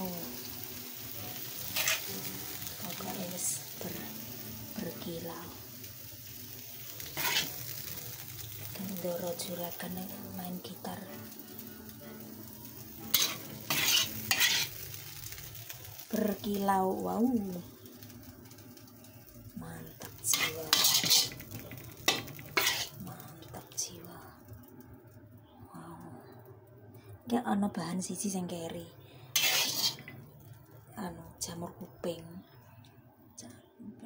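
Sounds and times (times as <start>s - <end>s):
food sizzling in oil in a pan: 0.0s - 25.6s, 29.3s - 31.5s
metal spoon scraping a wok: 1.6s - 2.1s, 7.0s - 7.7s, 13.1s - 14.9s, 20.3s - 23.0s, 29.4s - 30.2s.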